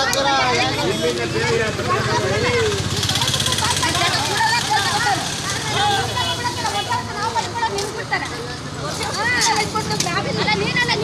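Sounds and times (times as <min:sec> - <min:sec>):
vehicle engine running: 0:01.2 - 0:06.5
women talking: 0:01.9 - 0:11.0.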